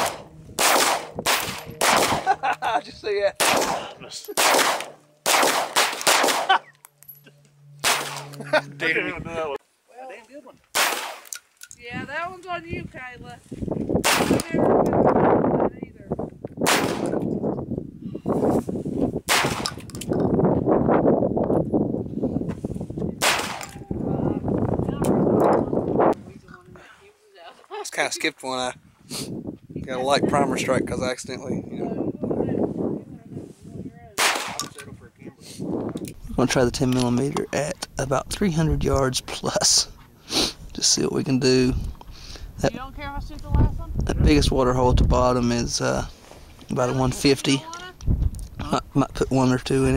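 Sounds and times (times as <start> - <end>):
handgun shots echoing: 0.0 - 2.3, 3.4 - 6.6, 7.8 - 8.3, 10.7 - 11.4, 14.0 - 14.5, 16.6 - 17.2, 19.3 - 20.0, 23.2 - 23.8, 34.2 - 34.8.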